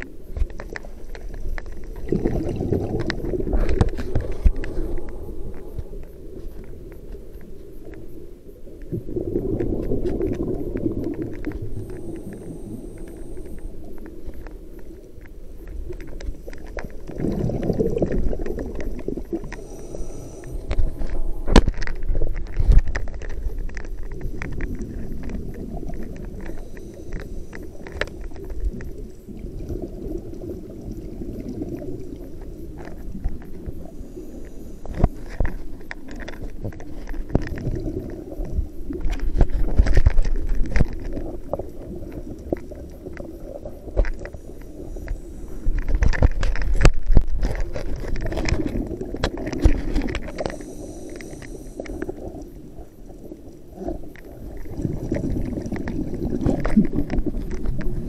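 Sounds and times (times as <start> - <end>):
gurgling regulator bubbles: 0.0 - 58.0
low underwater wash: 0.0 - 58.0.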